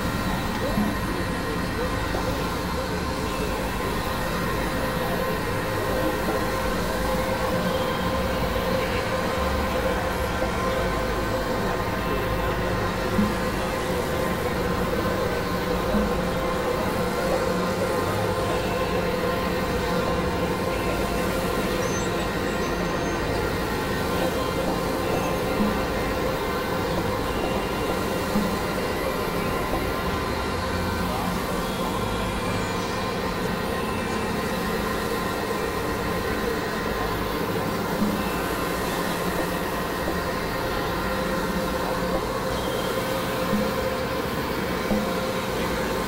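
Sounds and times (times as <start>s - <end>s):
synthesizer drone: 0.0s - 46.0s.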